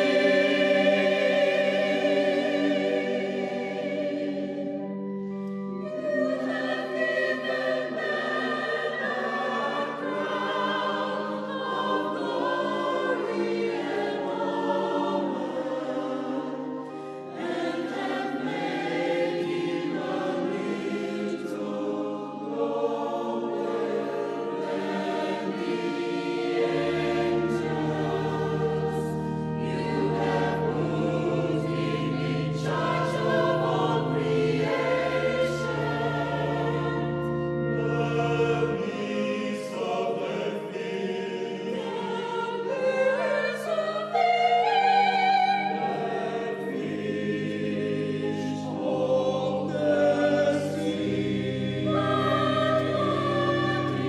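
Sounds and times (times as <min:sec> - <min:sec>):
choir singing a carol: 0:00.0 - 0:54.0.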